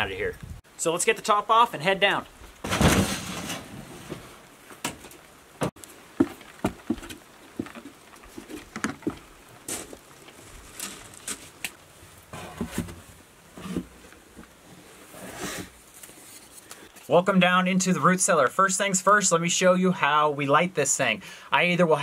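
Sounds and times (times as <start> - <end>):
boots on wooden stairs: 4.8 - 10.0.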